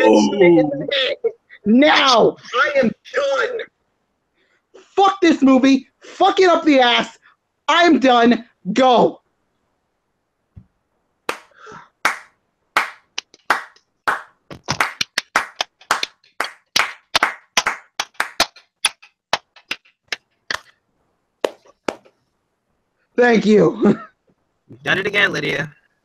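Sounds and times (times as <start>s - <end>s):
hand clapping: 11.3s - 20.7s, 21.4s - 22.1s.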